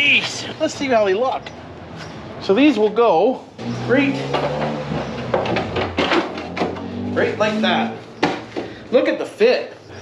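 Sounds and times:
hard plastic knocking and scraping: 4.3 - 6.9.

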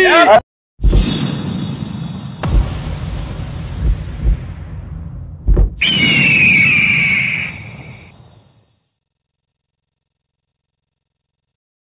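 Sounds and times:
low booms: 0.8 - 8.5
high falling screech: 5.8 - 8.6.

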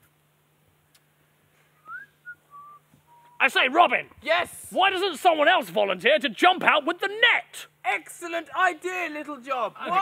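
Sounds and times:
faint whistled notes: 1.7 - 3.4.

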